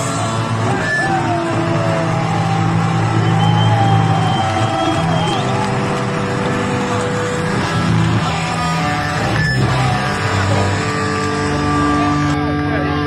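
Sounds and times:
punk band playing: 0.0 - 13.0.

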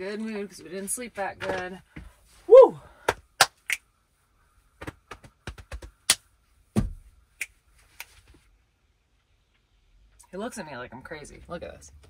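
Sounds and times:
high voice-like whoop: 2.5 - 2.9
dull thump: 6.7 - 7.1.

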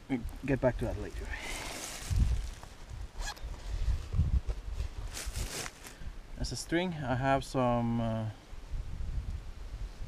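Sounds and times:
zipper pulled open: 3.2 - 3.5.

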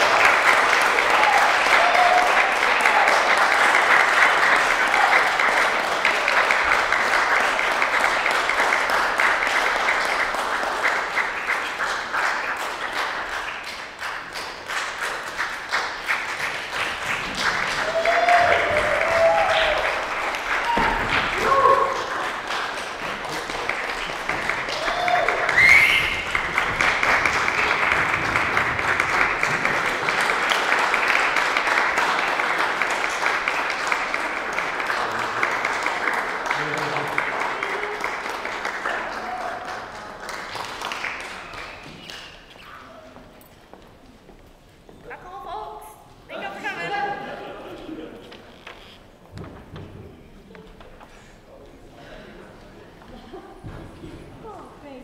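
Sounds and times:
audience applauding: 0.0 - 43.2, 46.5 - 49.0.

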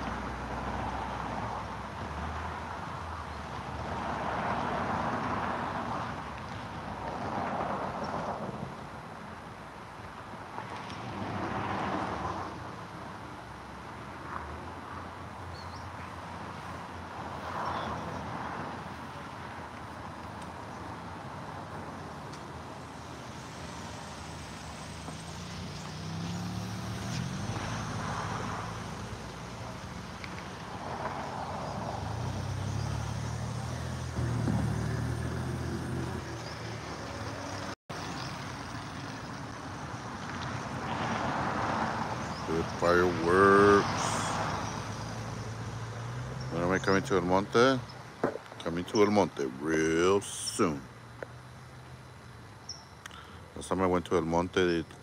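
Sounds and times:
cars passing by: 0.0 - 55.0
low engine hum: 21.7 - 40.6.

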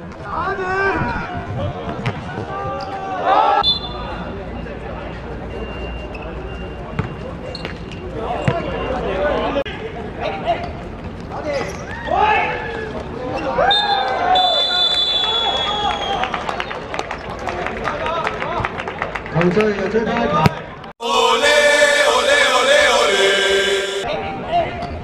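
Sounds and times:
referee's whistle blast: 3.6 - 4.0, 13.8 - 15.9
players shouting: 21.0 - 24.1.

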